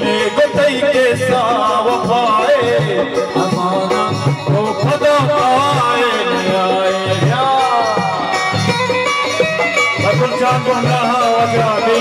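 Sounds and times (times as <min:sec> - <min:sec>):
man singing: 0:00.0 - 0:08.7, 0:09.9 - 0:12.0
harmonium: 0:00.0 - 0:12.0.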